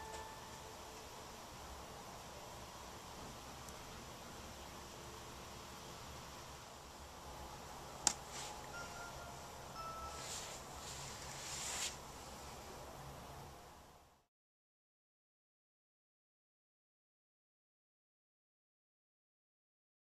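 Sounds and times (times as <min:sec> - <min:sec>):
hand brushing clay crumbs: 0:10.1 - 0:12.0.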